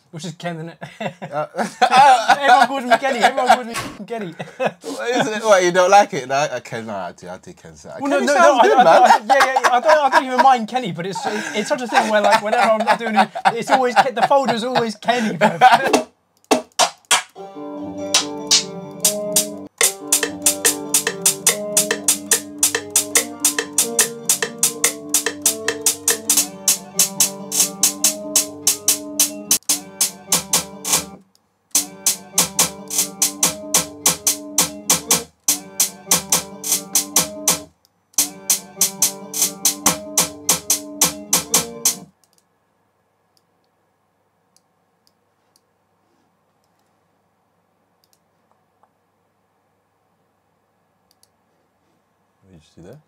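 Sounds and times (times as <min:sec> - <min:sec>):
fast snare hits: 0:15.8 - 0:17.4, 0:18.2 - 0:31.1, 0:31.8 - 0:42.1
melodic guitar loop: 0:17.4 - 0:31.2, 0:31.8 - 0:37.6, 0:38.2 - 0:42.1
faint mouse clicks: 0:42.2 - 0:42.5, 0:46.6 - 0:47.0, 0:48.0 - 0:49.0, 0:51.1 - 0:51.4.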